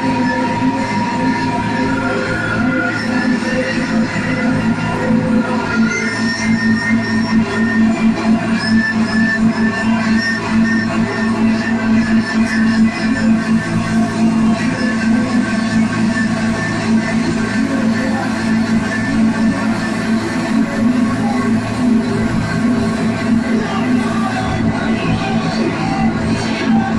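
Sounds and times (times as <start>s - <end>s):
bass guitar: 0.0s - 26.9s
low drone: 0.0s - 26.9s.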